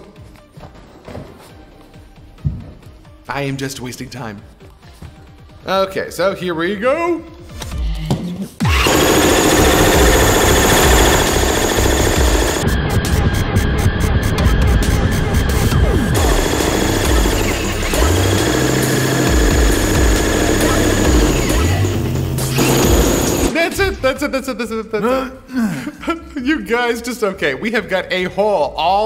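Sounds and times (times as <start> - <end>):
jackhammer chipping glass: 8.7 - 12.6, 16.2 - 23.5.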